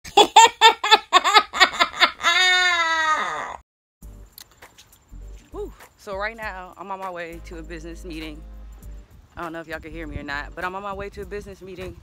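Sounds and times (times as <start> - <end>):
high-pitched voice laughing: 0.1 - 3.6.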